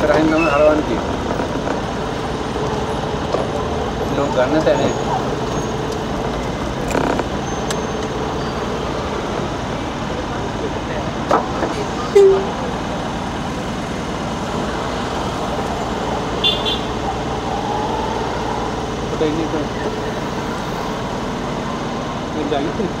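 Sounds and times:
road and engine noise: 0.0s - 23.0s
car horn toot: 12.1s - 12.6s, 16.4s - 17.0s.

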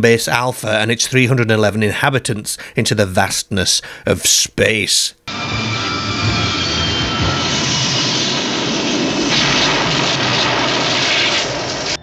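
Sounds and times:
spacecraft engines roaring: 5.3s - 12.0s
bright hiss: 8.4s - 12.0s.

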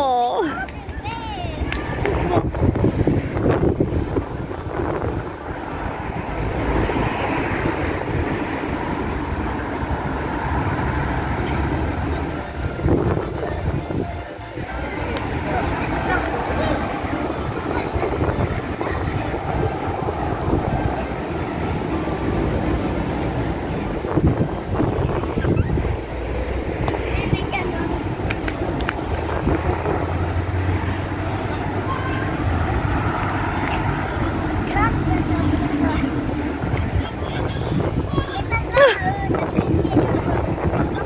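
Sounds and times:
voices talking in background: 0.0s - 41.0s
wind rumbling on microphone: 0.0s - 41.0s.

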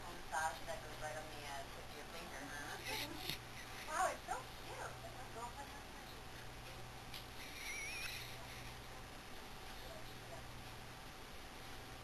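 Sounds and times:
dog whimpering: 7.4s - 8.6s.

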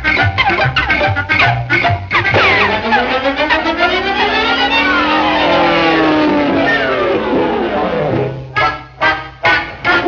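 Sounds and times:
cartoon sliding whine: 2.2s - 8.6s.

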